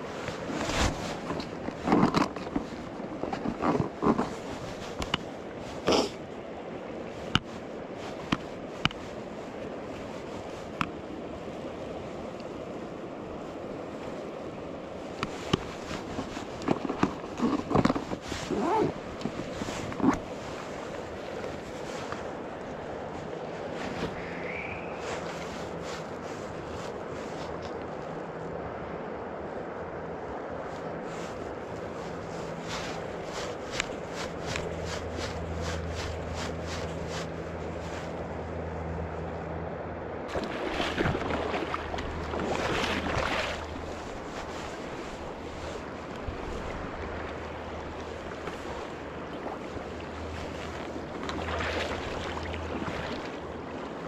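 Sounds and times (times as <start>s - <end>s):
river water running: 0.0s - 54.0s
gear rustling and knocking: 0.4s - 5.2s, 15.3s - 20.5s.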